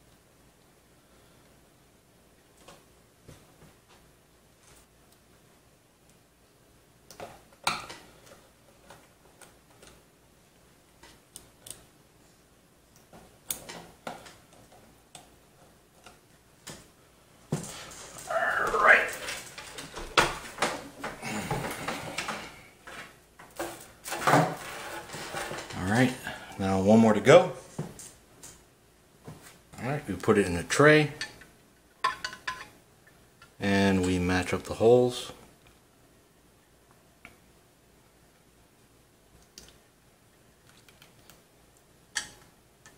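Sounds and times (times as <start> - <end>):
indistinct voice: 18.2 - 19.5.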